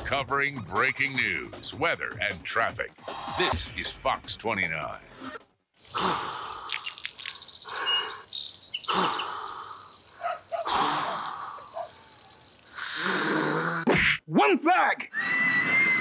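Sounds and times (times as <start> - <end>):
man blowing air into float: 5.8 - 6.6, 10.6 - 11.6, 12.7 - 13.9
birds chirping: 5.8 - 13.0.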